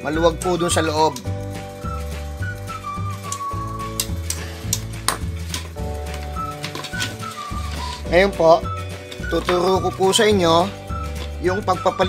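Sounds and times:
slow melody with bass line: 0.0 - 12.0.

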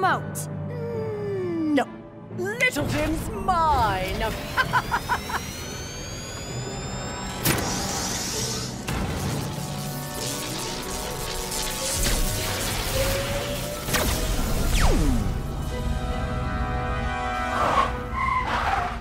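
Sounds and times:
background music: 0.0 - 19.0
energy crackle: 4.1 - 15.7
rising whine: 4.2 - 8.9
falling zap: 4.5 - 15.6.

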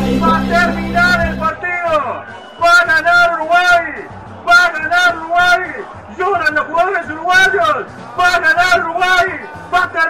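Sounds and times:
radio music jingle: 0.0 - 10.0
man talking loudly: 0.1 - 10.0.

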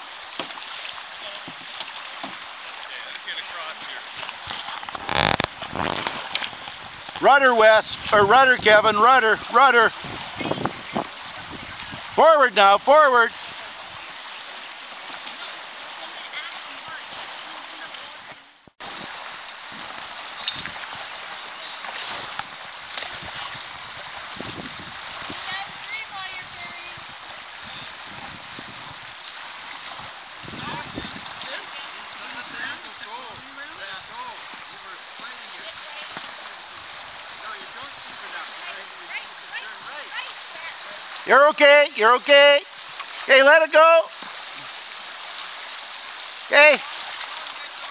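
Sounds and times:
river water rushing: 0.0 - 47.9.

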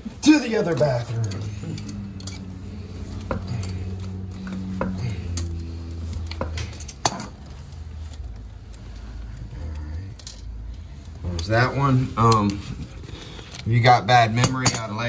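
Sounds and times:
low steady hum: 0.0 - 15.0
pliers clicking on metal nut: 0.7 - 2.5.

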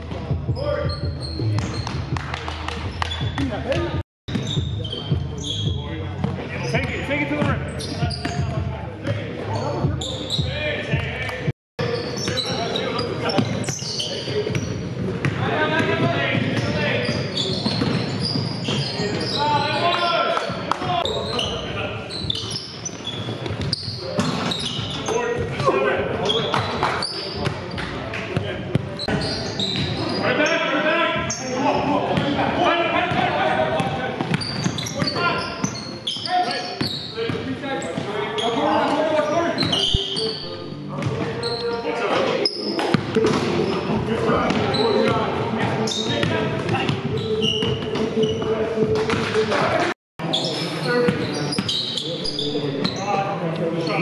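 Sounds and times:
players shouting and chatter: 0.0 - 54.0.

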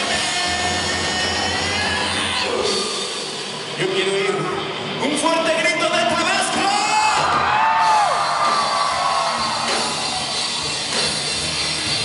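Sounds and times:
distorted rock guitars and bass: 0.0 - 5.1, 6.0 - 12.0.

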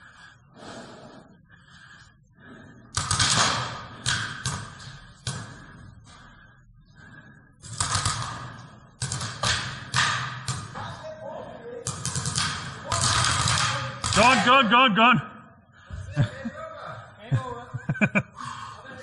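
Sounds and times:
paintball markers firing: 3.0 - 5.4, 7.6 - 10.8, 11.8 - 14.4
paintballs hitting cover: 11.9 - 14.4.

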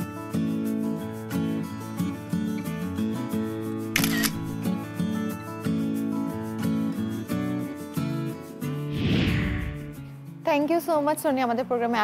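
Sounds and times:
background music: 0.0 - 11.9
camera shutter click: 4.0 - 4.6.

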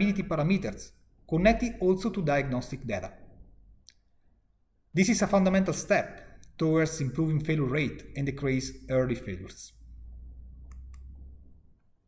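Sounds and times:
man talking: 0.0 - 3.2, 4.9 - 9.8.

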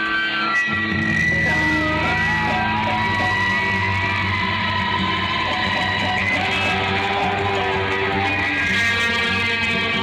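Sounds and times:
guitar amplifier feedback whine: 0.0 - 10.0.

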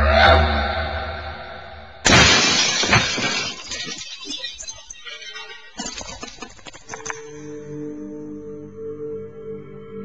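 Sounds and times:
car crash impact: 2.1 - 4.4
glass shattering: 2.1 - 7.4.

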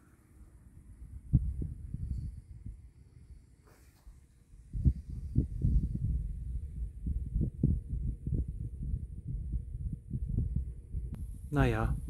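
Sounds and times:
wind buffeting microphone: 0.7 - 12.0.

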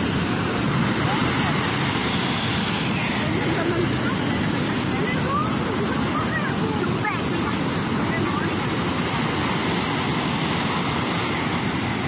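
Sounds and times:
ocean surf on beach: 0.0 - 12.0
wind on microphone: 0.0 - 12.0
faint voices: 0.8 - 9.5.

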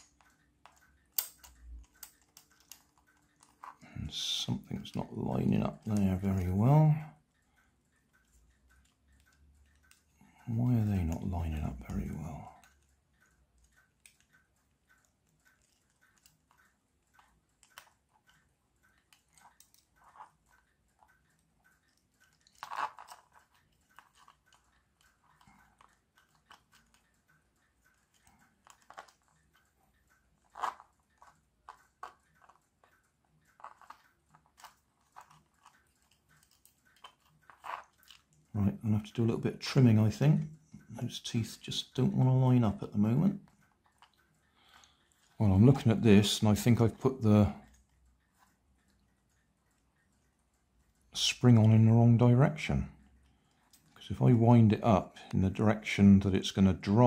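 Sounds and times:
plastic gears clicking: 0.0 - 6.7, 8.0 - 40.2, 41.2 - 51.8.

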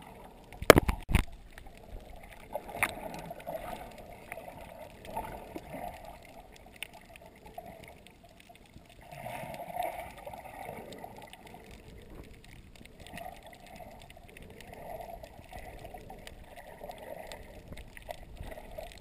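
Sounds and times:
muffled underwater water sloshing: 0.0 - 19.0
faint clicks: 0.3 - 19.0.

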